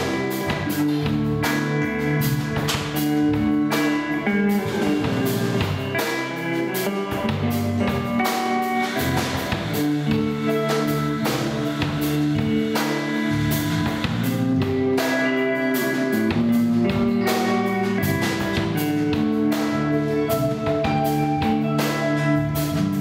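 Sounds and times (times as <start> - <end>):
live instrumental band: 0.0 - 23.0.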